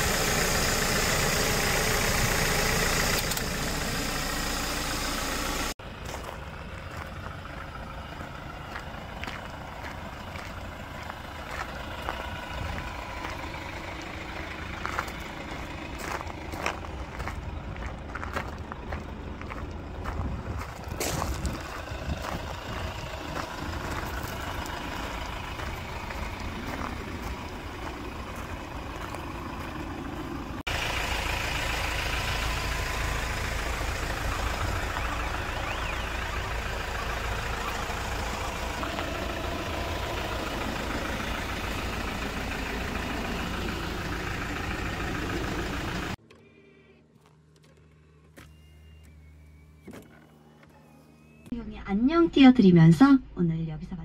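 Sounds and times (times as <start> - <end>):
outdoor ambient noise: 0.0 - 54.0.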